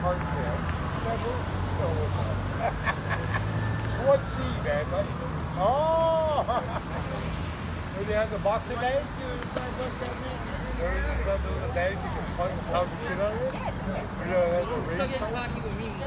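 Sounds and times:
passing cars rumbling: 0.0s - 16.0s
voices nearby: 0.0s - 16.0s.

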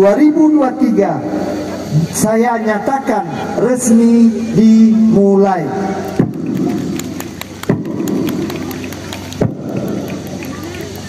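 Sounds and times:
crowd applauding: 6.0s - 11.0s
loud single claps: 6.1s - 11.0s.

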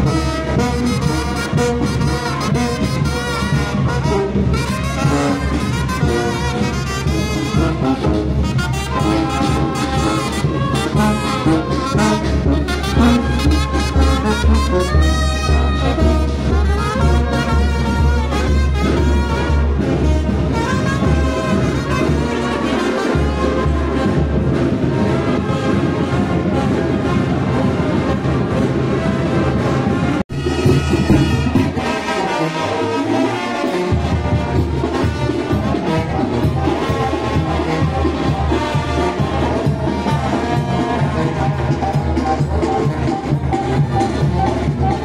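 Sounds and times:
brass band playing: 0.0s - 45.0s
trumpets: 0.0s - 45.0s.

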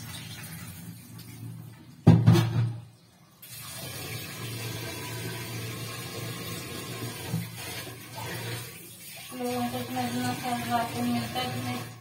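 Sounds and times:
water running from tap: 0.0s - 12.0s.

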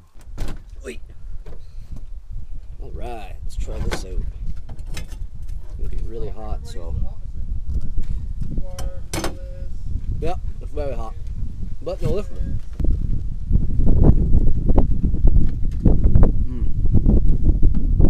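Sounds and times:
steady low rumble: 0.0s - 18.0s
man making vocal sounds: 16.4s - 16.8s.

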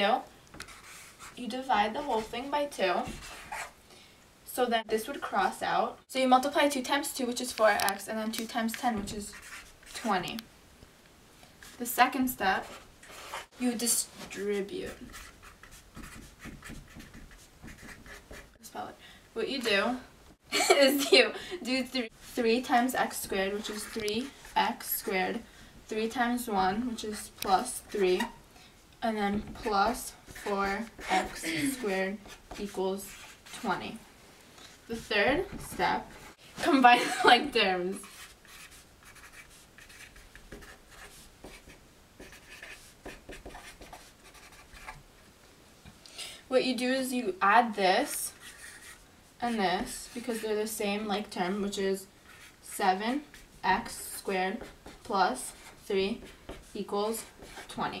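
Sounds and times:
marker scratching on paper: 0.6s - 3.8s, 7.4s - 10.4s, 11.6s - 18.6s, 22.2s - 28.4s, 29.2s - 34.0s, 34.9s - 36.9s, 37.6s - 45.0s, 48.0s - 58.0s.

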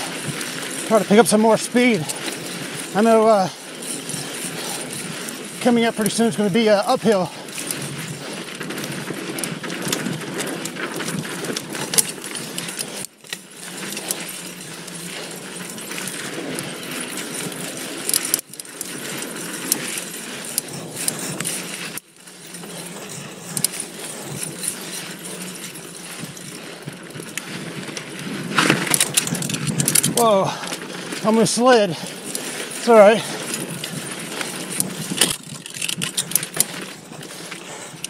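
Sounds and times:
bike chain and frame rattling: 0.0s - 38.0s
bike tyres rolling over dirt: 0.0s - 38.0s.

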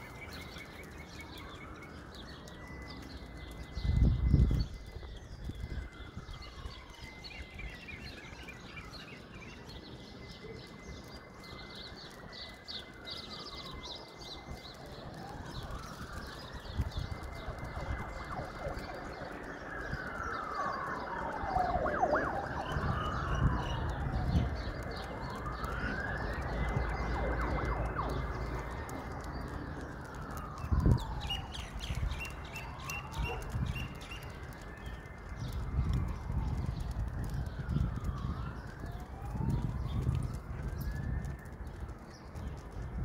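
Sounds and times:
emergency vehicle siren wailing: 0.0s - 43.0s.

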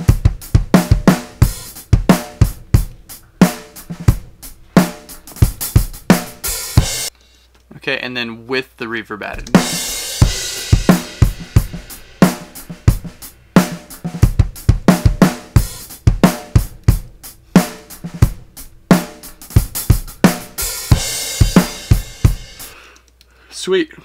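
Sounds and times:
drum kit groove: 0.0s - 7.4s, 9.2s - 23.1s.

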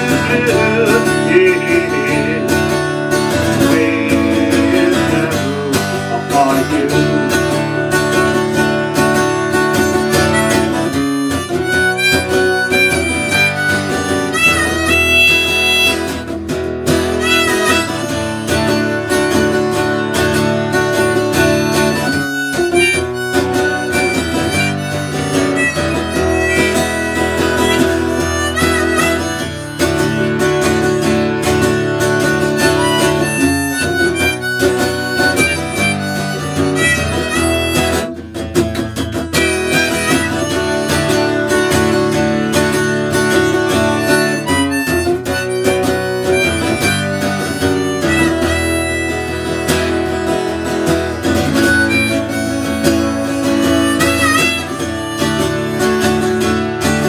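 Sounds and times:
acoustic guitar accompaniment: 0.0s - 57.0s
harmonica playing: 0.0s - 57.0s.

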